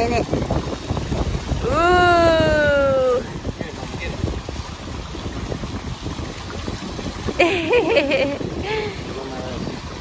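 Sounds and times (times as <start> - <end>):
fountain water rushing: 0.0 - 10.0
wind buffeting microphone: 0.0 - 10.0.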